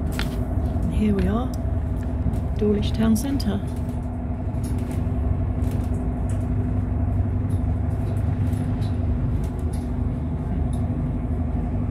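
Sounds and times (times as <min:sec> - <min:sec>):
bus engine humming: 0:00.0 - 0:11.9.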